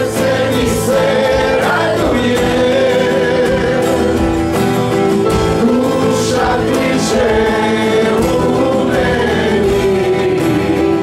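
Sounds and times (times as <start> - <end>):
keyboard: 0.0 - 11.0
strummed acoustic guitars: 0.0 - 11.0
voices singing together: 0.0 - 11.0.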